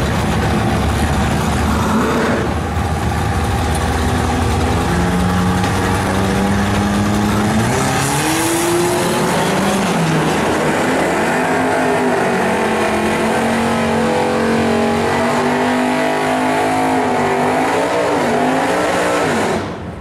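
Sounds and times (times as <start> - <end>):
car engines at full throttle: 0.0 - 20.0.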